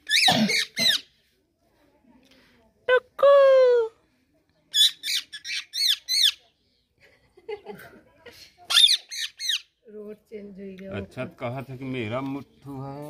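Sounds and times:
parakeet squawking: 0:00.1 - 0:01.0, 0:08.7 - 0:09.7.

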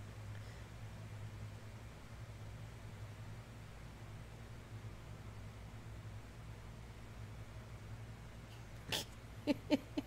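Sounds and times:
low steady hum: 0:00.0 - 0:10.0
woman laughing: 0:08.9 - 0:10.0.

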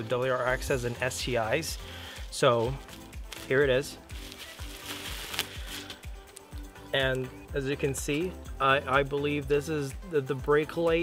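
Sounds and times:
background music with beat: 0:00.0 - 0:11.0
plastic packaging crinkling: 0:02.8 - 0:06.5.

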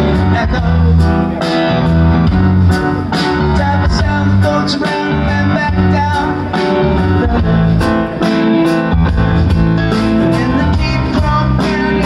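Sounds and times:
bass guitar: 0:00.0 - 0:12.0
drum kit: 0:00.0 - 0:12.0
guitar: 0:00.0 - 0:12.0.

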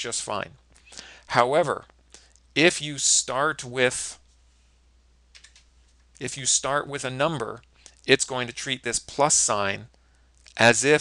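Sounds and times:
computer keyboard key clicks: 0:05.3 - 0:05.7.

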